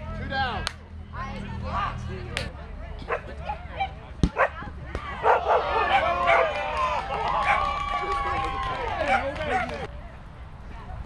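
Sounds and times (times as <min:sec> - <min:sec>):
people shouting outdoors: 0:03.1 - 0:09.9.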